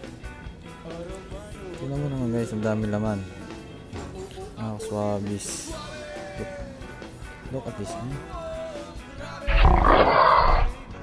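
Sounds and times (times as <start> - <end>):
rock music: 5.4 - 11.0
loud roar: 9.5 - 10.8.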